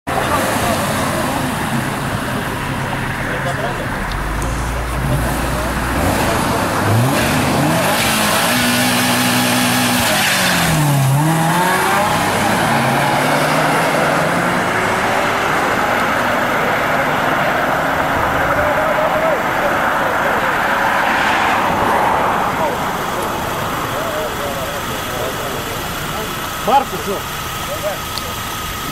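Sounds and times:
car engines accelerating hard: 0.1s - 28.9s.

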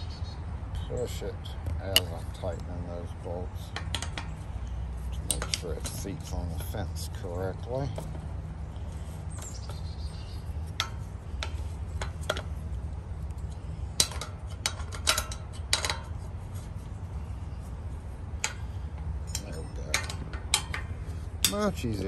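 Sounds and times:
sharp metallic clicks and taps: 1.6s - 2.7s, 3.7s - 4.4s, 5.2s - 6.8s, 18.4s - 21.8s
steady low rumble: 4.4s - 22.0s.

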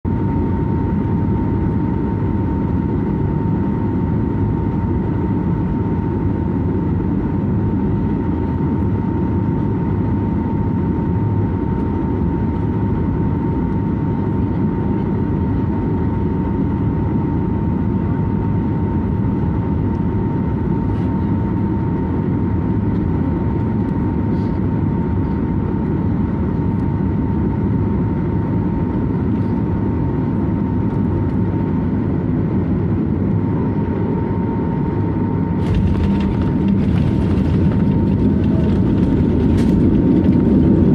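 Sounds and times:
engine and airflow rumble: 0.0s - 40.9s
steady high whine: 16.1s - 40.9s.

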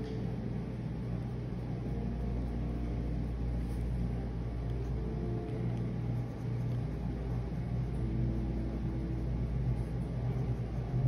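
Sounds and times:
low rumble and hum: 0.0s - 11.0s.

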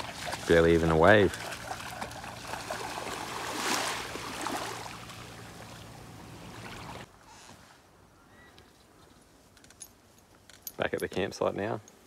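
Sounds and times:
small waves washing on shore: 0.0s - 7.1s.

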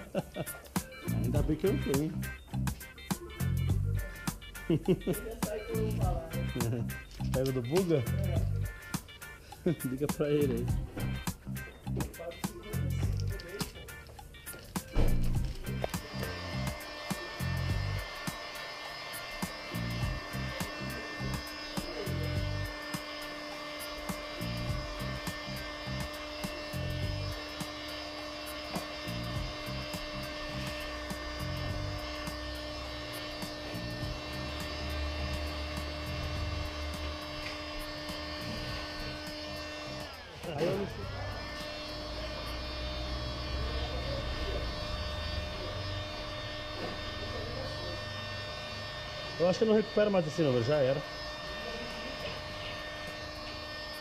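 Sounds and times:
heat gun whining: 0.0s - 54.0s.

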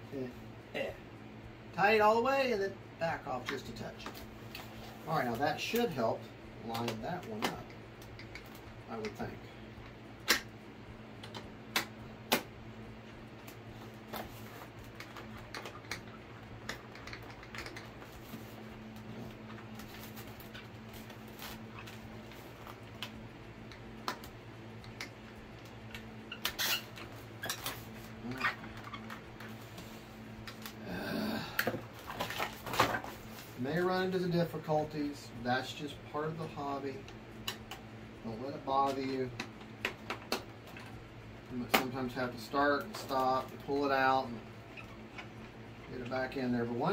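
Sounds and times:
steady low hum: 0.0s - 46.9s.

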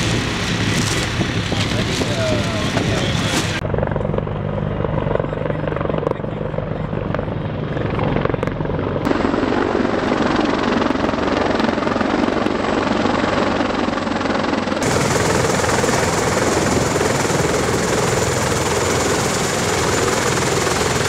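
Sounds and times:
helicopter flying overhead: 0.0s - 21.0s.

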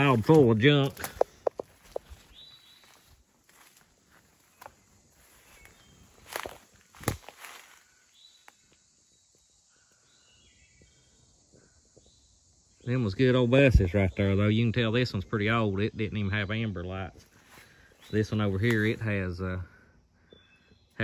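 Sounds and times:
footsteps through grass: 0.0s - 8.6s, 17.1s - 19.3s.

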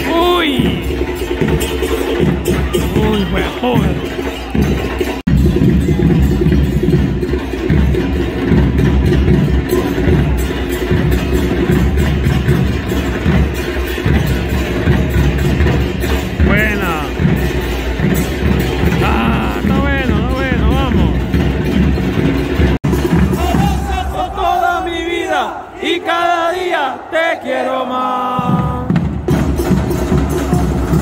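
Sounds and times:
drum beat: 0.0s - 26.8s, 28.1s - 31.0s
crowd chanting: 16.4s - 21.0s, 22.9s - 31.0s.

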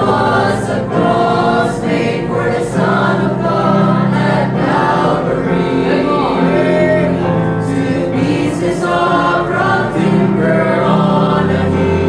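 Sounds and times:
mixed choir singing gospel: 0.0s - 12.0s.

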